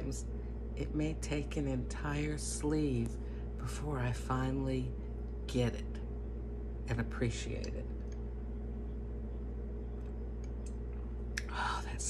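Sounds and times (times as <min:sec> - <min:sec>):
low hum of room tone: 0:00.0 - 0:12.0.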